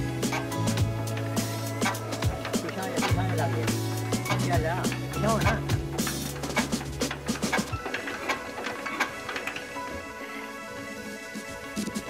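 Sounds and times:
diesel engine hand cranked: 0:00.0 - 0:10.2
background music: 0:00.0 - 0:12.0.

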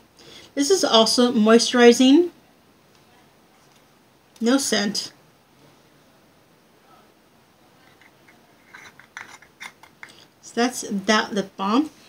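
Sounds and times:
screw lid rasping clicks: 0:08.0 - 0:10.1.

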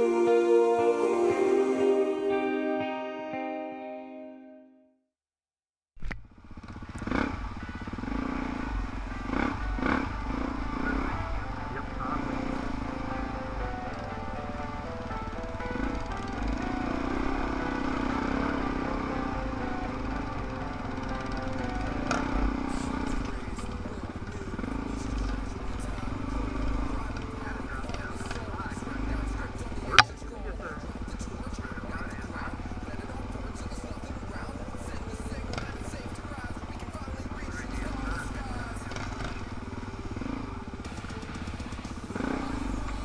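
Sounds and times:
dirt bike engine revving: 0:06.3 - 0:43.0.

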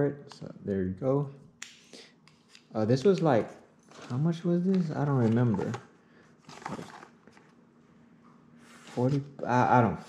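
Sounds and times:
cardboard box rustling: 0:06.4 - 0:07.2.

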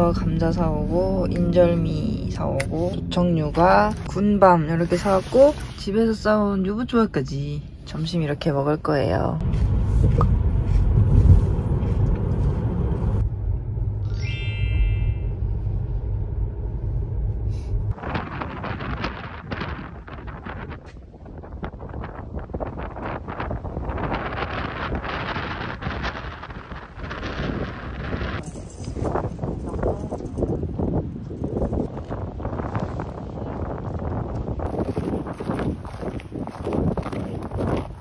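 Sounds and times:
road rumble inside car: 0:00.0 - 0:04.6, 0:07.4 - 0:14.1, 0:15.2 - 0:21.2
wind noise on microphone: 0:09.1 - 0:13.3, 0:17.3 - 0:38.0
short car chime: 0:14.1 - 0:15.4.

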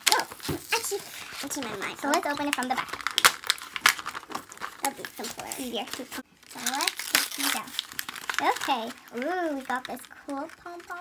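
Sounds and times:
cardboard packaging tearing: 0:00.0 - 0:10.1.

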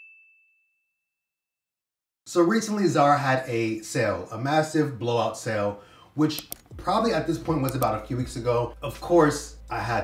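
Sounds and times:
high bell-like ding: 0:00.0 - 0:00.8.

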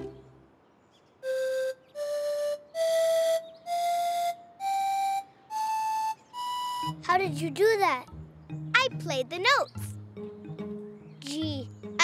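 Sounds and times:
pan flute playing rising scale: 0:01.2 - 0:07.0.

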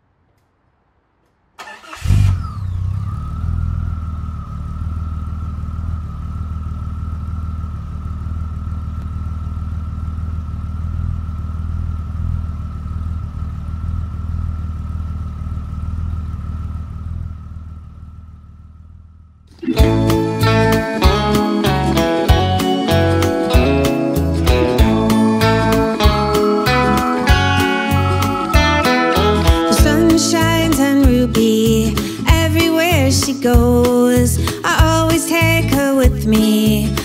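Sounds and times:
car engine starting and idling: 0:01.2 - 0:37.0.

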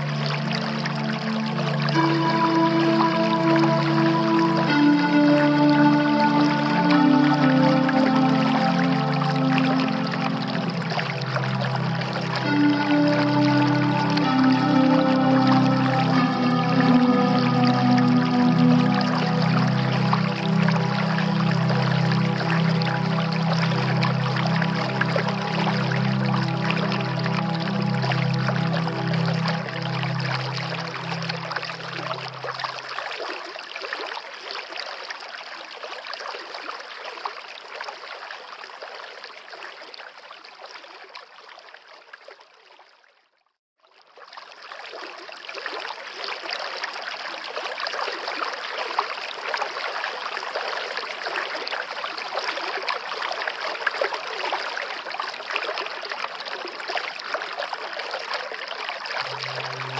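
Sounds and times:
music: 0:00.0 - 0:32.9, 0:59.2 - 0:59.9
stream water rushing: 0:00.0 - 0:33.3, 0:59.2 - 0:59.9.

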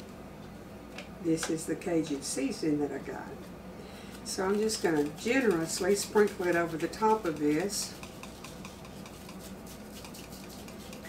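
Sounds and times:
plastic shaker shaken: 0:04.5 - 0:11.0.

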